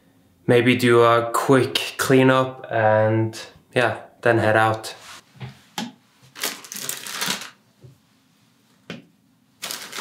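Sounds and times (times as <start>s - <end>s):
plastic bag crinkling: 6.3s - 7.6s, 9.6s - 10.0s.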